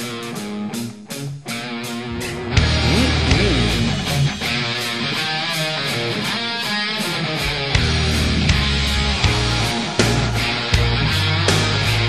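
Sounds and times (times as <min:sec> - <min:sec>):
heavy metal electric guitar: 0:00.0 - 0:12.0
steady drum beat: 0:02.0 - 0:05.1.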